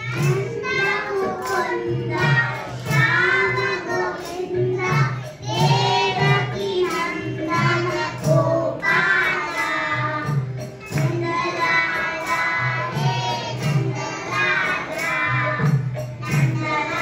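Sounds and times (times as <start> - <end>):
children singing into microphones: 0.0 - 17.0.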